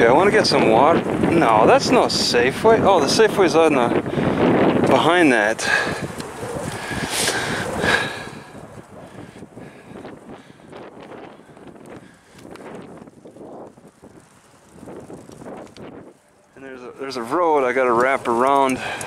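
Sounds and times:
road noise: 0:00.0 - 0:19.0
wind buffeting microphone: 0:00.0 - 0:19.0.

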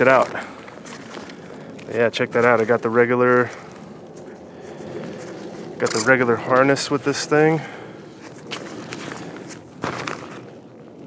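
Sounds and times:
backpack fabric rustling: 0:00.0 - 0:06.3, 0:08.0 - 0:10.6.

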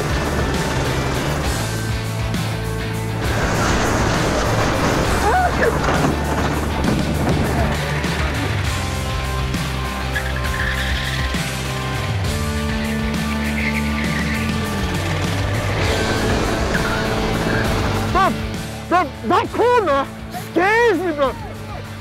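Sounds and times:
go-kart engines racing: 0:00.0 - 0:18.9
background music: 0:00.0 - 0:22.0.

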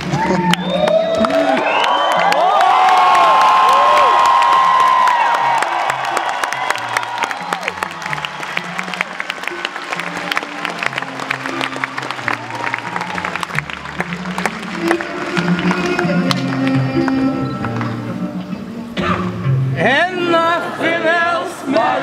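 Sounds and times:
crowd cheering and whistling: 0:00.0 - 0:18.0
scattered clapping: 0:00.0 - 0:18.0.

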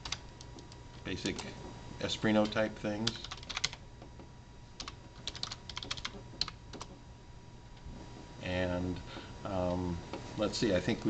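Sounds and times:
computer keyboard keys clicking: 0:00.0 - 0:01.5, 0:02.4 - 0:03.8, 0:04.8 - 0:07.0.

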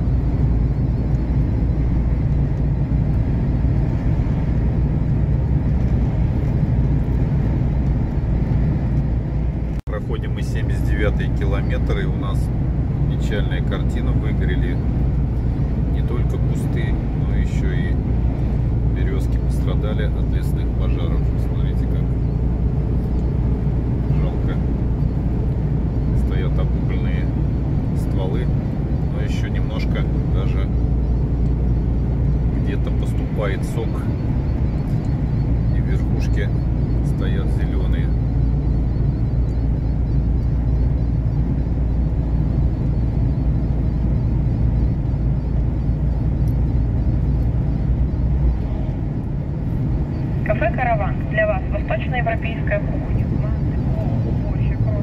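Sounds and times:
truck engine and tyres droning: 0:00.0 - 0:55.0.

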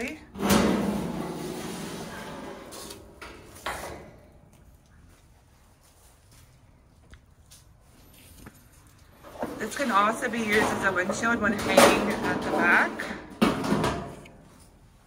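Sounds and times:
metal hood clanking: 0:00.3 - 0:04.2
metal scraping: 0:00.4 - 0:04.2.

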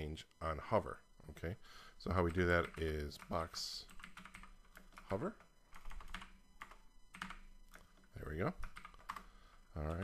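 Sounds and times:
typing on a keyboard: 0:03.9 - 0:05.2, 0:05.8 - 0:09.3.

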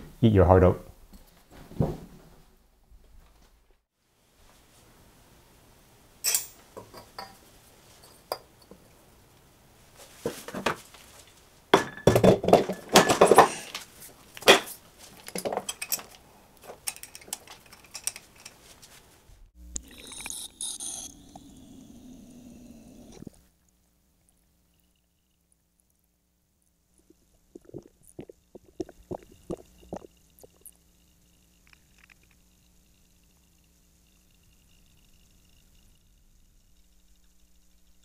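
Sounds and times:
steady noise: 0:19.4 - 0:23.4, 0:27.0 - 0:38.0.

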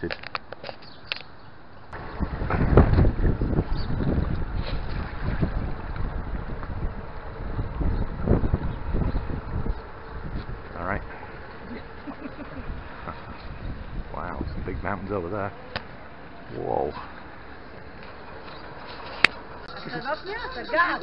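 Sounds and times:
wind buffeting microphone: 0:01.9 - 0:16.1.

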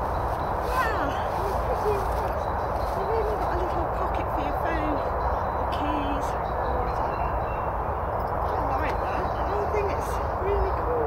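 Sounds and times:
small birds chirping: 0:00.0 - 0:11.0
steady rushing noise: 0:00.0 - 0:11.0.

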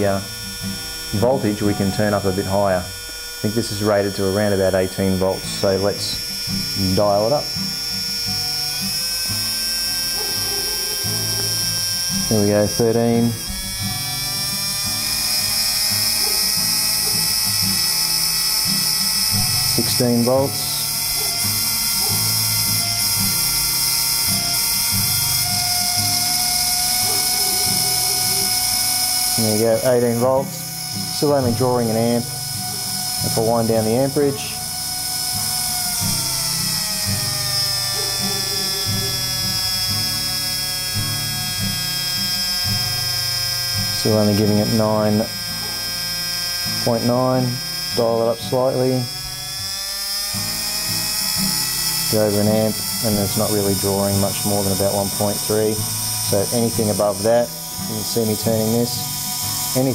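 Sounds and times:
low buzz: 0:00.0 - 0:59.9
small drill motor whining: 0:00.0 - 0:59.9.

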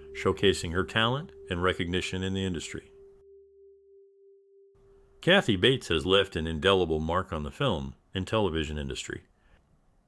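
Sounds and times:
faint steady pure tone: 0:00.0 - 0:08.1.

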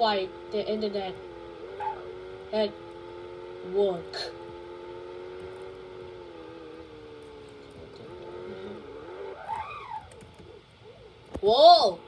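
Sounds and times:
video game car engine: 0:00.0 - 0:12.0.

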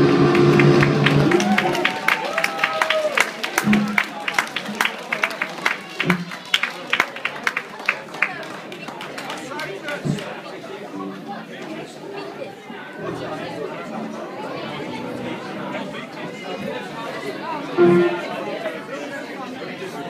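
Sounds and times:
indistinct chatter of people: 0:00.0 - 0:20.0.

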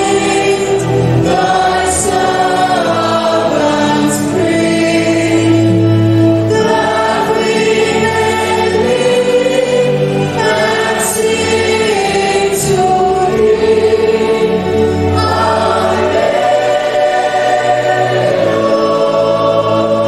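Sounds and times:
choir and congregation singing hymn: 0:00.0 - 0:20.0.

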